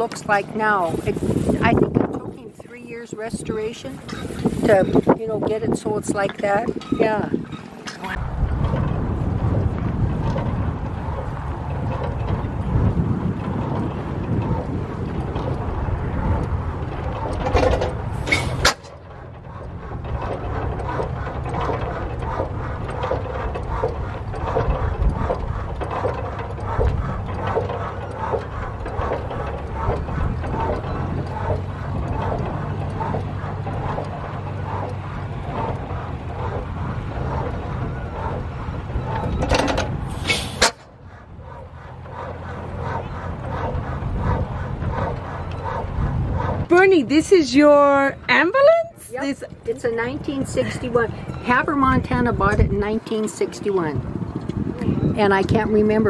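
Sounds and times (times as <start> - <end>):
flywheel gas engines running: 0.0 - 56.0.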